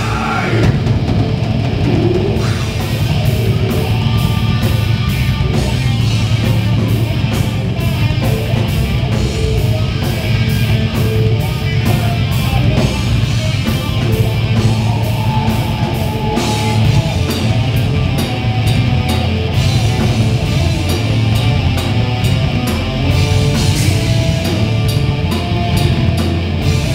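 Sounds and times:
rock band playing: 0:00.0 - 0:26.9.

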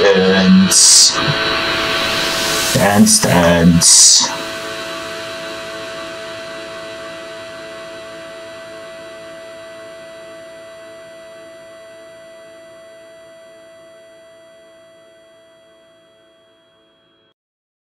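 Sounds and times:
steady synthesizer tone: 0:00.0 - 0:12.2.

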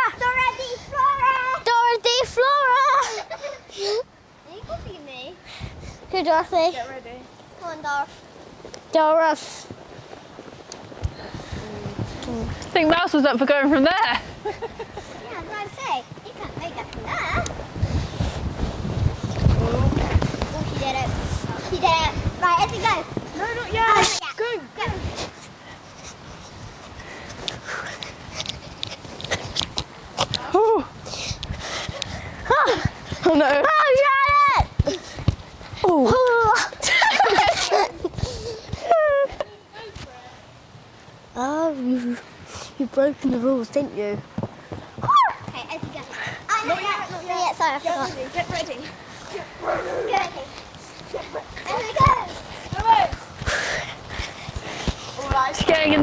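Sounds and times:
feet running in sand: 0:09.7 - 0:12.6, 0:14.2 - 0:23.4, 0:47.9 - 0:56.0
person breathing: 0:38.2 - 0:38.9, 0:53.4 - 0:55.2.

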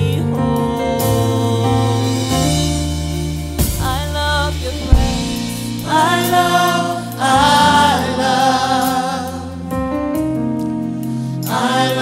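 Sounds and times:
lead singer: 0:00.0 - 0:09.8, 0:11.2 - 0:12.0
bass: 0:00.0 - 0:12.0
sharp hit: 0:04.6 - 0:06.6
backing vocalists singing: 0:04.6 - 0:09.7, 0:11.4 - 0:12.0.

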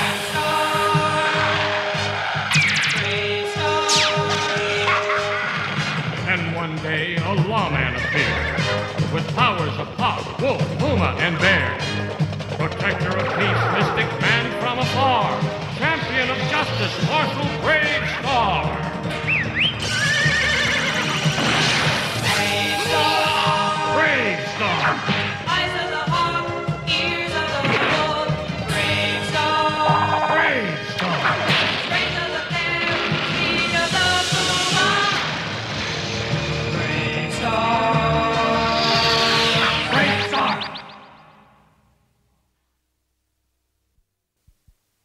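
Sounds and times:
cartoon theme music with singing: 0:00.0 - 0:41.5
horse whinnying: 0:07.9 - 0:08.8, 0:19.2 - 0:23.7
sharp crack: 0:31.4 - 0:32.2.

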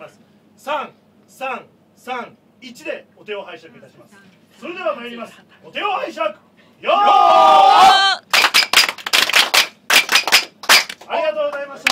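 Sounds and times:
crowd clapping in unison: 0:08.2 - 0:11.9.

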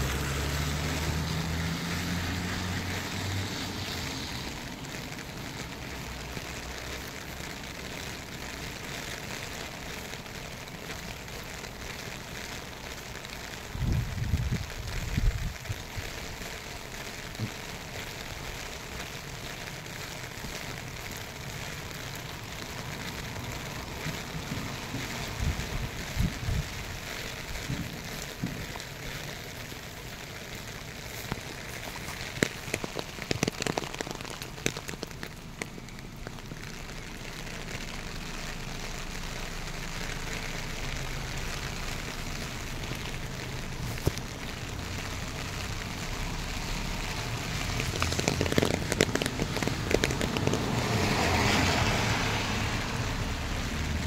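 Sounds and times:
steady rain falling: 0:00.0 - 0:54.0.

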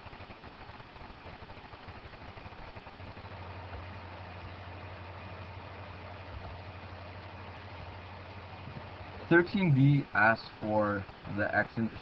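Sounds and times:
faint hiss: 0:00.0 - 0:12.0
steady low hum: 0:00.0 - 0:12.0.

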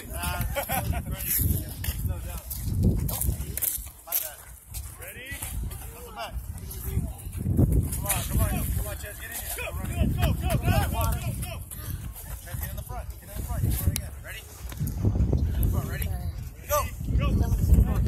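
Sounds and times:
wind rumbling on microphone: 0:00.0 - 0:18.0.

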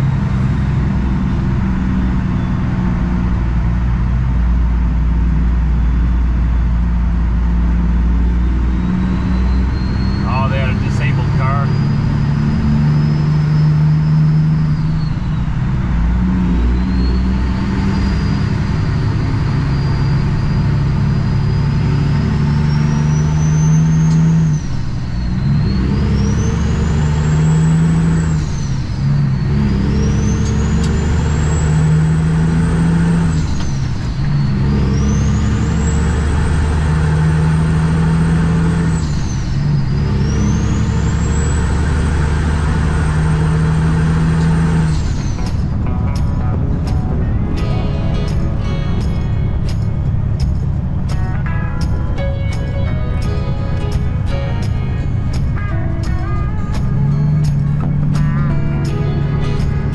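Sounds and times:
diesel truck engine accelerating: 0:00.0 - 0:59.9
turbo whistle: 0:08.4 - 0:12.2.

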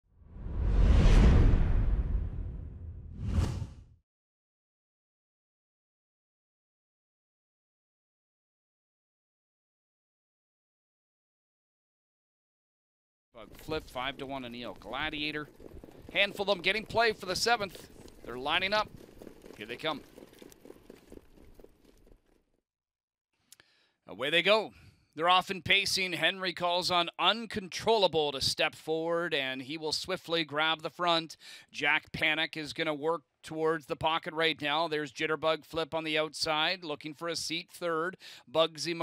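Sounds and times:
whoosh with deep rumble: 0:00.2 - 0:04.0
faint hoofbeats: 0:13.4 - 0:22.4.

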